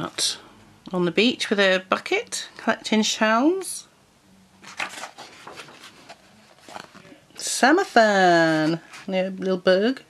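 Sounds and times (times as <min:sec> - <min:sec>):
paper page rustling: 0:04.6 - 0:07.1, 0:08.5 - 0:09.1.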